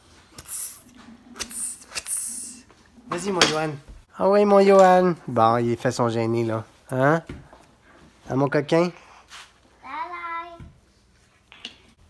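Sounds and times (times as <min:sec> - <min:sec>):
person making hissing mouth sounds: 0:00.3 - 0:02.7.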